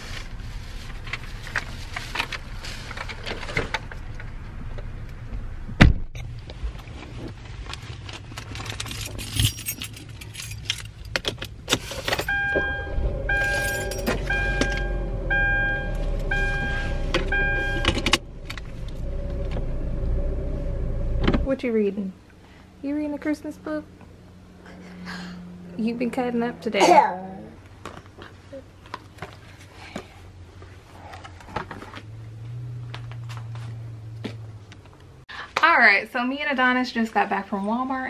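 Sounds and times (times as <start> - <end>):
rustling bags and keys: 7.8 - 12.6, 13.2 - 15.0
car door shutting: 11.7 - 19.9, 20.7 - 21.5
two-tone warning chime: 12.2 - 18.2
car engine idling: 12.2 - 21.5.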